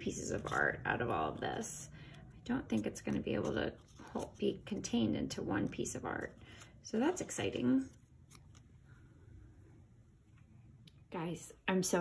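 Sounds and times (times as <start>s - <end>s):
scissors cutting paper: 0.0s - 8.6s.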